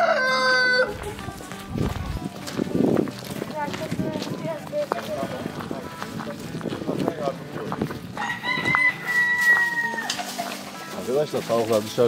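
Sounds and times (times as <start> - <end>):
rooster crowing: 0.0 - 0.9, 8.2 - 10.3
hens clucking: 0.0 - 11.8.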